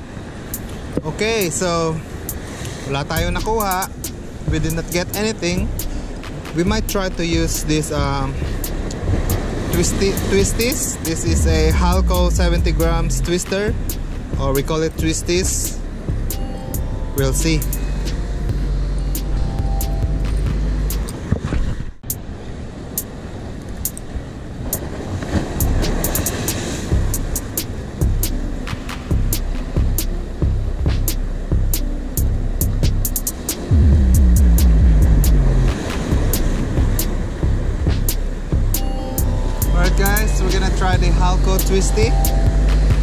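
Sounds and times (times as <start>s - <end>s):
wind rumbling on microphone: 0.0s - 43.0s.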